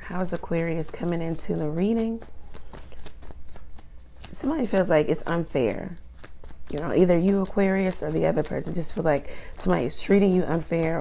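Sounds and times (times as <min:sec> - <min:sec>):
cards being shuffled: 0:00.1 - 0:11.0.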